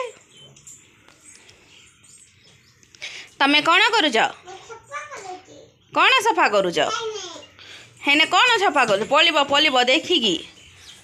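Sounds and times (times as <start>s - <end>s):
woman's voice: 3.4s - 4.4s, 8.0s - 10.5s.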